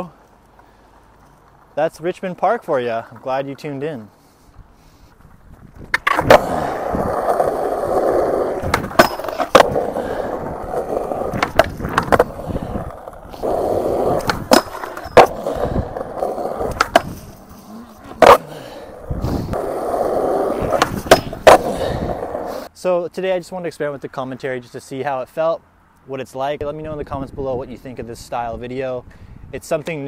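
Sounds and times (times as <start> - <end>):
skateboard wheels on rough concrete: 0.0 - 22.7
skateboard tail clacking: 5.8 - 22.7.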